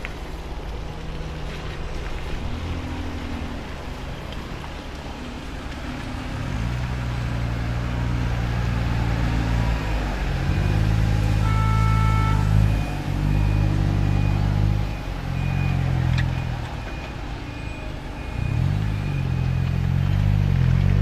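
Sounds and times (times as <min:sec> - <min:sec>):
bus diesel engine pulling away: 0:00.0 - 0:21.0.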